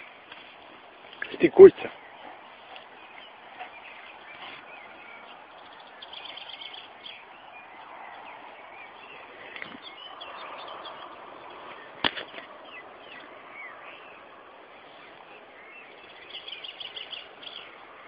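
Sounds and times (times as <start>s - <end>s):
small birds chirping: 0.0s - 18.0s.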